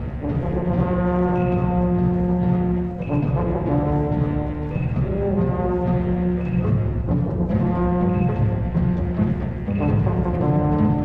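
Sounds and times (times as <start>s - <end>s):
low brass and wind notes: 0.0s - 11.0s
steady drum beat: 0.0s - 11.0s.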